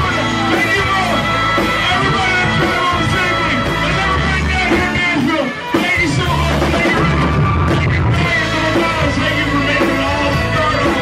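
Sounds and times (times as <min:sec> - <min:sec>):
bass guitar: 0:00.0 - 0:11.0
drums: 0:00.0 - 0:11.0
electric guitar: 0:00.0 - 0:11.0
man singing: 0:00.0 - 0:11.0.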